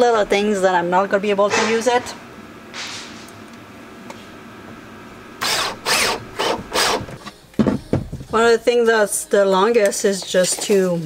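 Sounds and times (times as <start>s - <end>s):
cordless drill driving screw: 5.4s - 7.2s.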